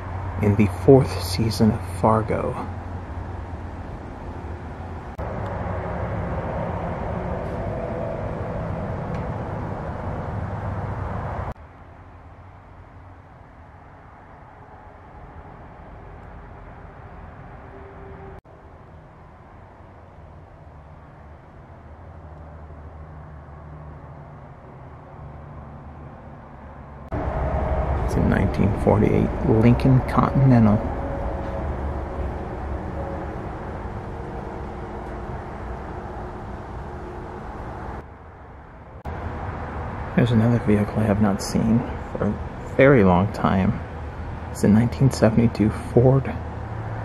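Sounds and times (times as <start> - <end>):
low hum: 0.0 - 47.0
rumbling background noise: 0.0 - 47.0.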